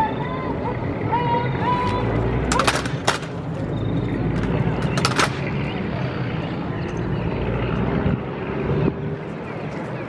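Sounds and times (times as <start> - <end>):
low engine-like drone: 0.0 - 10.0.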